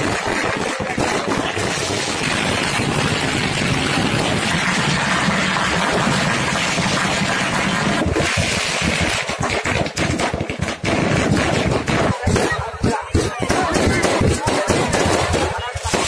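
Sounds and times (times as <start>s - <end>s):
firecrackers crackling and banging: 0.0s - 16.0s.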